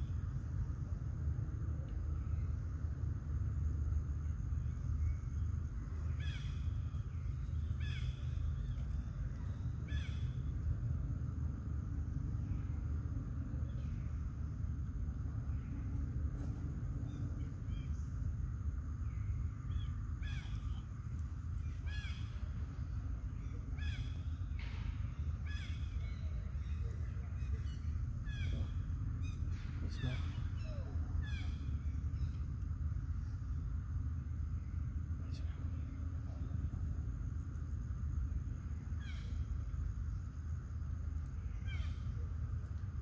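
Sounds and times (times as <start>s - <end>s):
steady low rumble: 0.0s - 43.0s
short arched animal calls: 27.4s - 32.4s.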